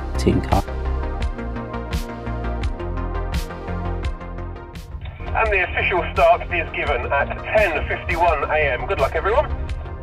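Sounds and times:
background music with steady beat: 0.0 - 10.0
announcer over car radio: 5.1 - 9.5.

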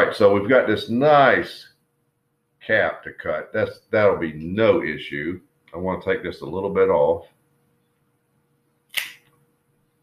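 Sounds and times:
cigar cutter snap: 8.9 - 9.3.

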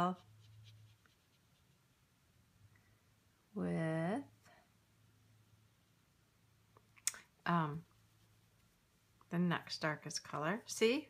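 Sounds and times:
brush scratching on paper: 0.0 - 2.1, 7.5 - 10.8.

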